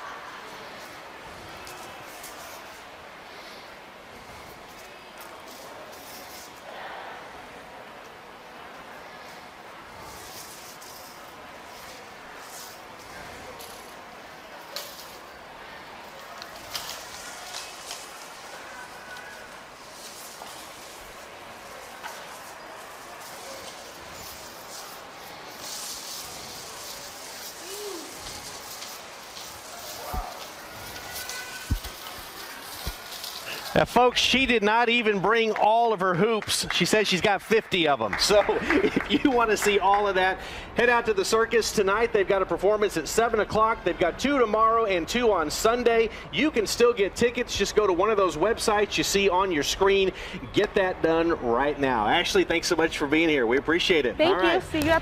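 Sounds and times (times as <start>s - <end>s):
shopping mall room noise: 0.0s - 55.0s
short high hisses: 23.1s - 32.1s.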